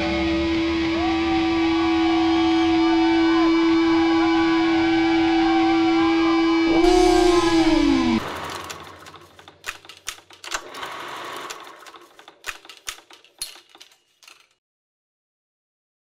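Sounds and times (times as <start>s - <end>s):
rock music: 0.0s - 4.8s
electric guitar note bending down: 6.5s - 8.3s
sharp clicks and crackles: 8.2s - 14.6s.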